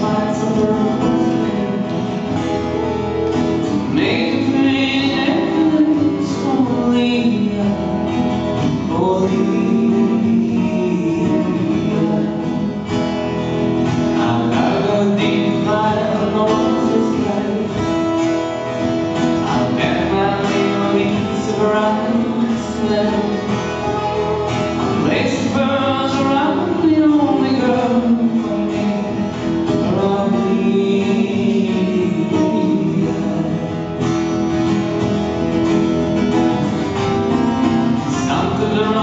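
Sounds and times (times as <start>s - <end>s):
man singing: 0.0s - 2.7s, 3.7s - 34.5s, 37.1s - 39.0s
acoustic guitars playing: 0.0s - 39.0s.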